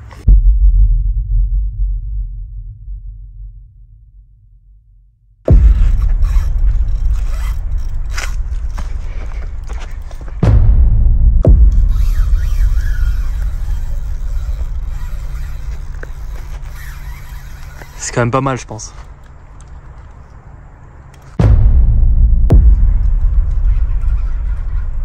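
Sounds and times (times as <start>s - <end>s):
fishing reel clicking and scraping: 5.7s - 10.2s, 11.8s - 20.4s.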